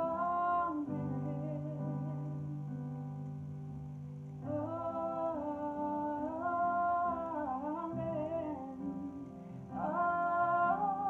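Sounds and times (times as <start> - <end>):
women singing worship melody: 0.0 - 2.6, 4.4 - 11.0.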